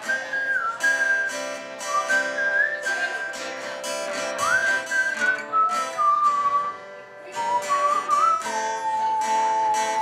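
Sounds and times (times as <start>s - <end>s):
man whistling a slow melody: 0.0s - 10.0s
strummed acoustic guitar: 0.0s - 10.0s.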